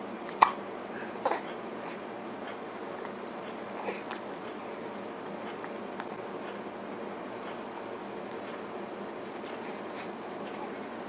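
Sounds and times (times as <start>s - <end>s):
baby hiccuping: 0.3s - 0.6s.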